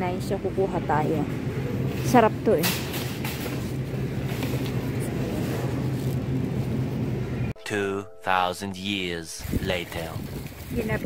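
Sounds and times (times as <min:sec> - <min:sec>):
supermarket background hum: 0:00.0 - 0:07.5.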